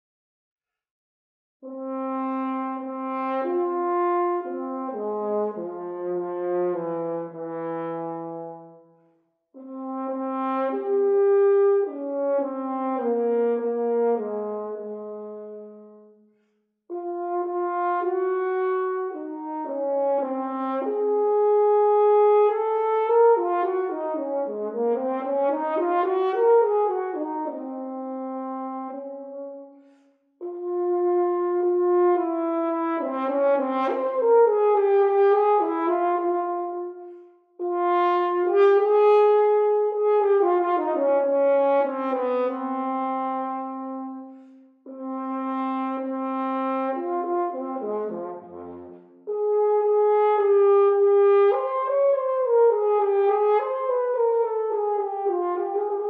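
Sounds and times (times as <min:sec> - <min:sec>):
solo french horn melody: 0:01.6 - 0:56.0.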